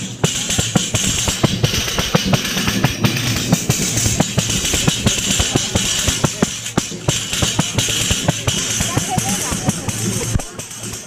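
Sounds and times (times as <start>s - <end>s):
tambourine struck by hand: 0.0s - 11.0s.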